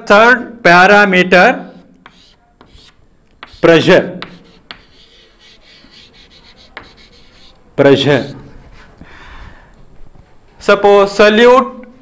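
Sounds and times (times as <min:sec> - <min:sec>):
chalk scratching on blackboard: 0:01.7 - 0:09.0.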